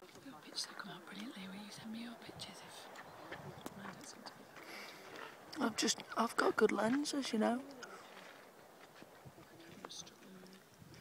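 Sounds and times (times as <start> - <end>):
people talking quietly and whispering: 0.0 - 11.0.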